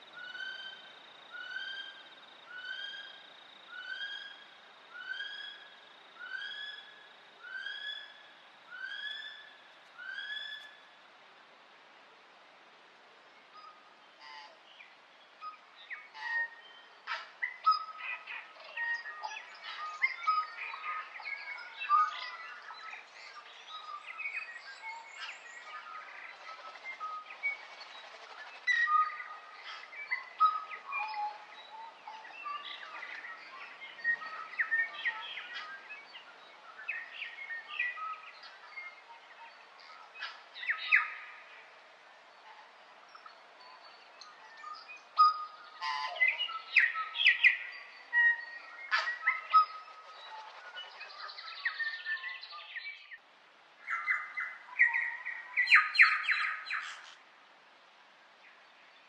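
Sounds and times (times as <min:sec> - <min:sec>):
birds chirping and trilling: 0:13.6 - 0:53.2, 0:53.8 - 0:57.2.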